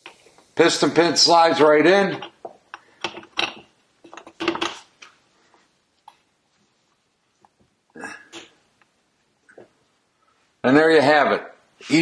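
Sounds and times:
piston knocks and clinks: 2.2s - 4.8s.

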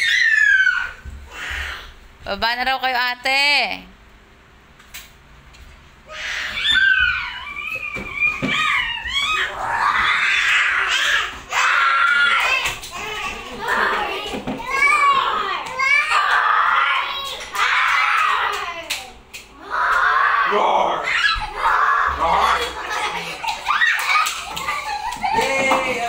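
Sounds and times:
children squealing and shrieking: 0.0s - 2.0s, 6.1s - 26.0s.

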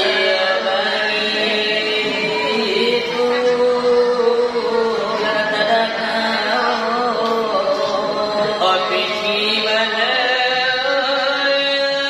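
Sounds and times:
men chanting devotional verse: 0.0s - 12.0s.

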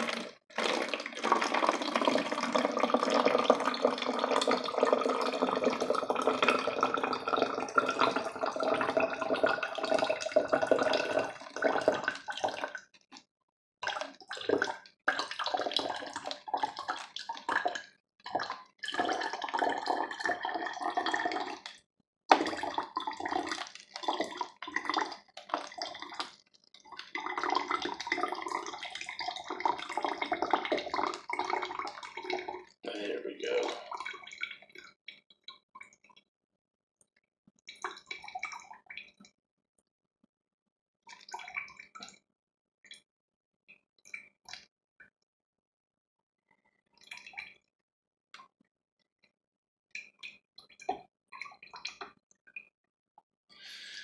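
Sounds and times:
water pouring into a bottle: 0.0s - 36.2s, 37.7s - 39.3s, 41.1s - 42.2s, 53.6s - 54.0s.

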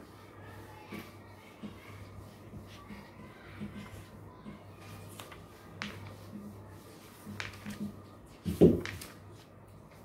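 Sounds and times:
duster wiping whiteboard: 0.0s - 10.0s.

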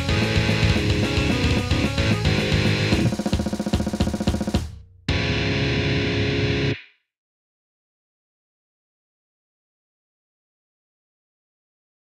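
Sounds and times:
distorted electric guitar chord: 0.0s - 3.2s, 5.1s - 6.8s.

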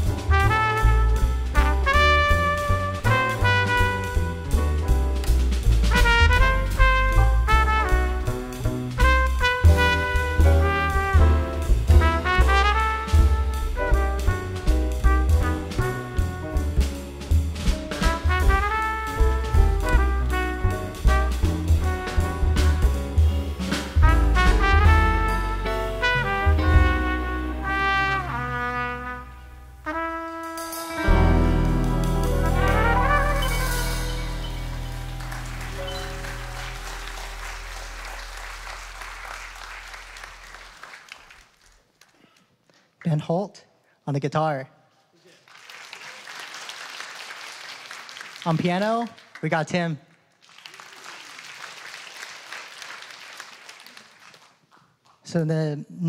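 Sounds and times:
trumpet melody: 0.0s - 17.0s, 17.8s - 38.7s
walking upright bass: 0.0s - 30.3s, 30.9s - 40.3s
drum kit: 0.0s - 40.7s
guitar: 30.8s - 36.7s.

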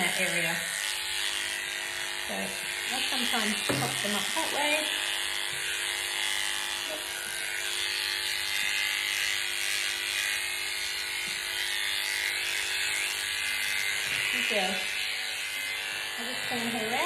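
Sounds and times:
electric pet clipper humming: 0.0s - 17.0s.

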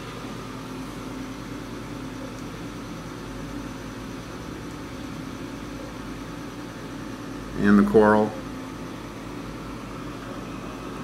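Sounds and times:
aquarium pumps humming: 0.0s - 11.0s.

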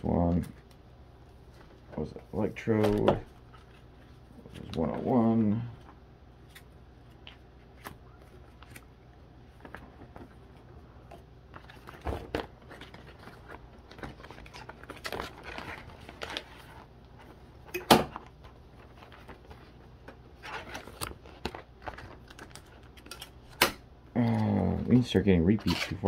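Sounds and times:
cards rustling in plastic pockets: 1.4s - 23.6s, 24.2s - 26.0s.

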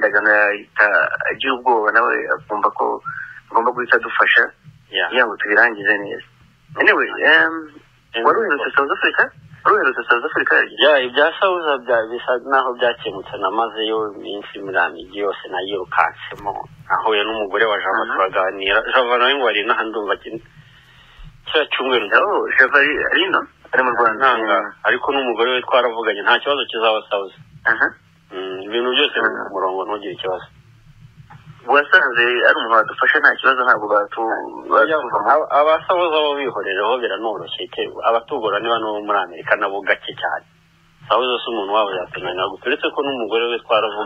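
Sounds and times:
person talking: 0.0s - 20.6s, 21.4s - 30.6s, 31.2s - 40.4s, 41.0s - 44.0s
faint steady low hum: 0.0s - 44.0s.

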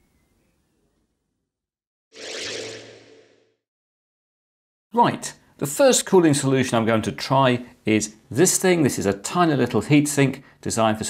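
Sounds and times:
whoosh sound effect: 2.2s - 3.6s.

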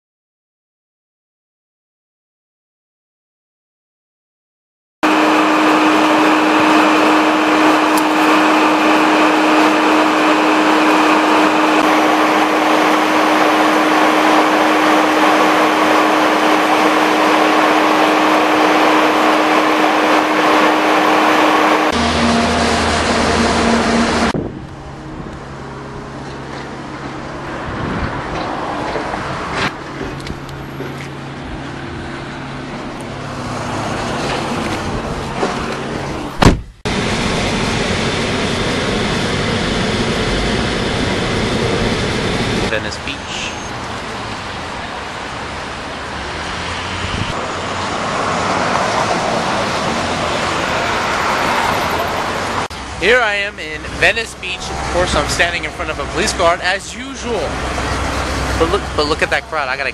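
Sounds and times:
airliner cabin roar: 5.0s - 59.9s
road vehicle sound: 5.0s - 59.9s
constant low hum: 21.8s - 44.9s.

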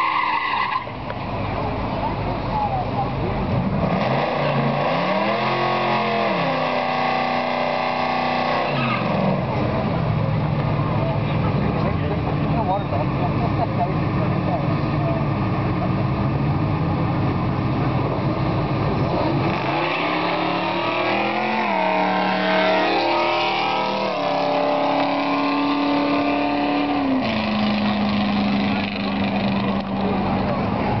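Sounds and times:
drag racing car engines: 0.0s - 31.0s.

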